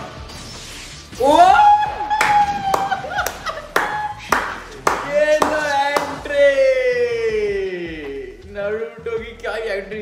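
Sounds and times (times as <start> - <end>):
person clapping hands: 2.2 - 6.2.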